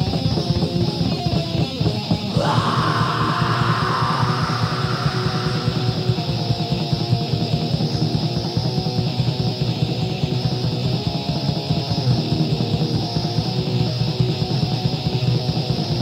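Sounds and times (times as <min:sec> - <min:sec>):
fast drumming: 0:00.0 - 0:09.9
distorted electric guitars: 0:00.0 - 0:16.0
harsh bright noise layer: 0:02.3 - 0:07.6.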